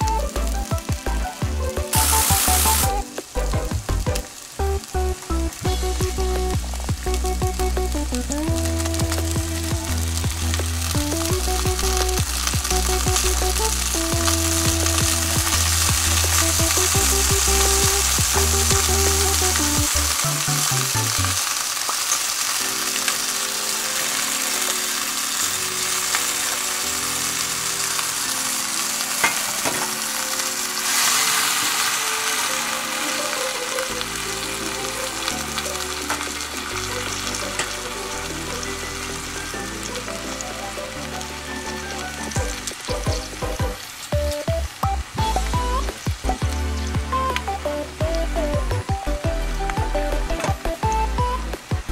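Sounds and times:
background music: 0:00.0 - 0:21.6, 0:22.5 - 0:51.9
shrimp sizzling in a frying pan: 0:00.0 - 0:51.9.

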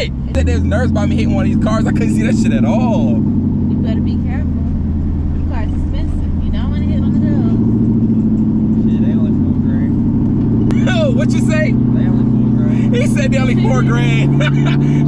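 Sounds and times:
voices: 0:00.0 - 0:10.1, 0:10.7 - 0:15.0
vehicle engine droning: 0:00.0 - 0:15.0.

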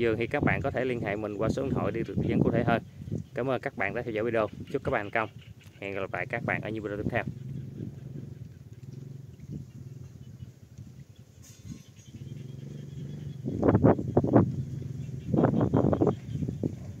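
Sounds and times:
animal pulsed cries: 0:04.2 - 0:10.6, 0:11.4 - 0:17.0
steady low hum: 0:06.1 - 0:17.0.

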